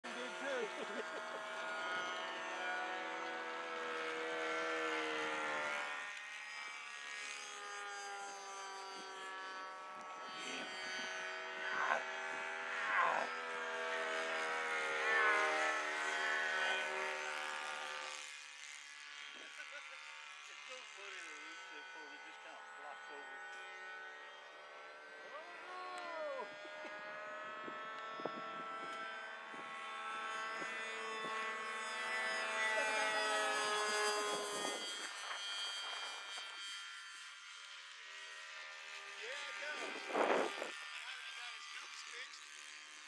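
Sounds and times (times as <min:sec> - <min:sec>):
model aircraft motors droning: 0:00.0 - 0:43.0.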